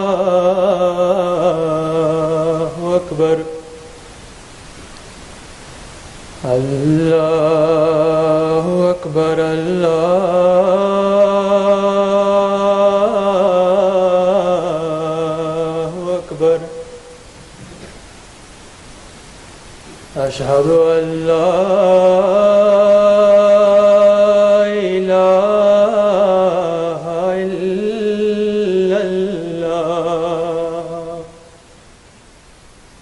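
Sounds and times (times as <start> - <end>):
hall background hiss: 0.0 - 33.0.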